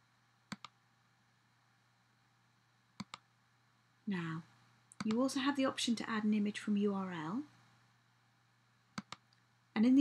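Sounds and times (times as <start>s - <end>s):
computer mouse clicks: 0.5s - 0.8s, 3.0s - 3.3s, 4.9s - 5.2s, 9.0s - 9.4s.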